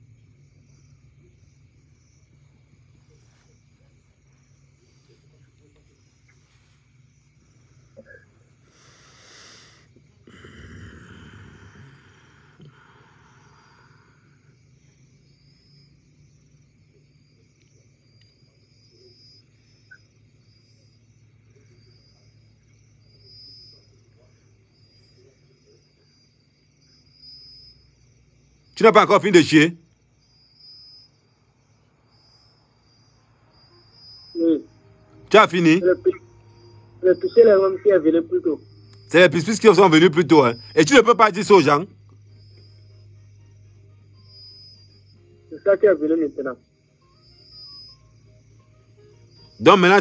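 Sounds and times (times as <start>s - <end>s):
faint high-pitched whine: 0.0s - 50.0s
faint low hum: 0.0s - 50.0s.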